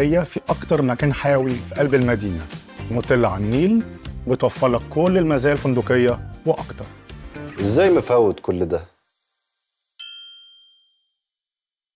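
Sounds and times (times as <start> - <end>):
bright metallic ding: 10.0 - 11.0.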